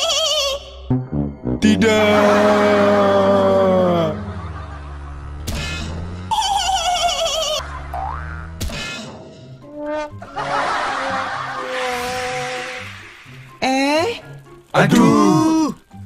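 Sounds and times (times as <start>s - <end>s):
background music: 0.0s - 16.0s
sharp cartoon crash: 5.4s - 6.2s
springy boing effect: 7.7s - 8.8s.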